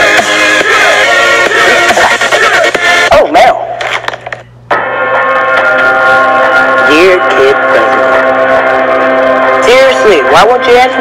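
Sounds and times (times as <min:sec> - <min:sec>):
music: 0:00.0 - 0:03.2, 0:04.7 - 0:11.0.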